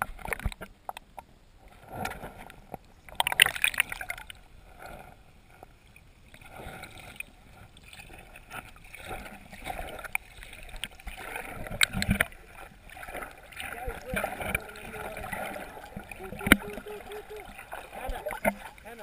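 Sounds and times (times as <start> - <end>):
muffled underwater sloshing: 0.0 - 19.0.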